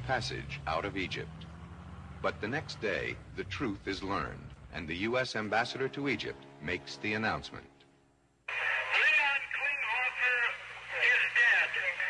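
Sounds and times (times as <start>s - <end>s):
faint steady hum: 7.7s - 12.0s
man talking over telephone: 8.5s - 12.0s.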